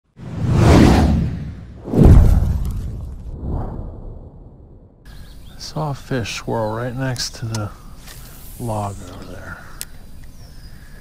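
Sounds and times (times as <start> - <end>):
whooshes: 0.2 - 5.0.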